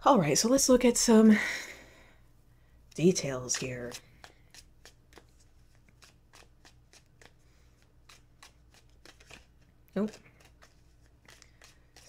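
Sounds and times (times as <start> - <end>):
deck of cards shuffling: 3.0 - 12.0.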